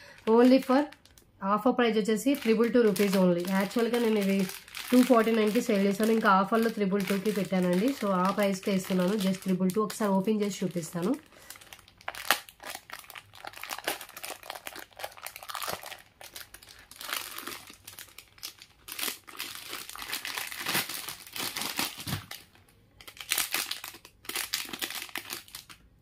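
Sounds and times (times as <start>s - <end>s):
plastic wrapping crinkling: 0.0s - 1.3s, 1.9s - 26.0s.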